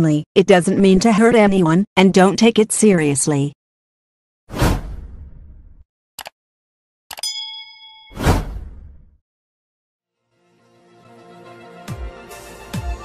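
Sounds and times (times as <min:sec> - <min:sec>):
whoosh: 0:04.5 - 0:05.8, 0:08.2 - 0:09.1
bright ding: 0:07.2 - 0:08.2.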